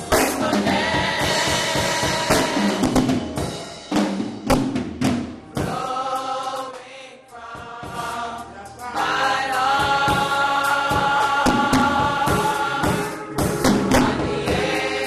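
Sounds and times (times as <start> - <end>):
choir singing gospel: 0.0 - 15.0
drums: 0.0 - 15.0.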